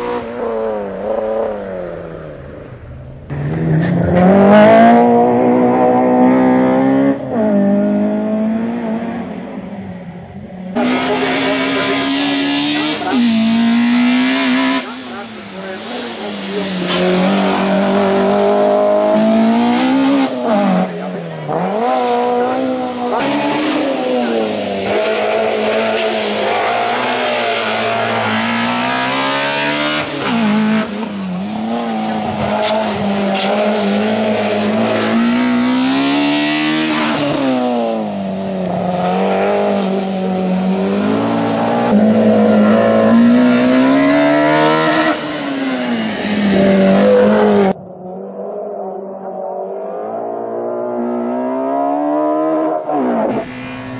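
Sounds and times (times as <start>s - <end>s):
race car engine revving: 0.0s - 53.9s.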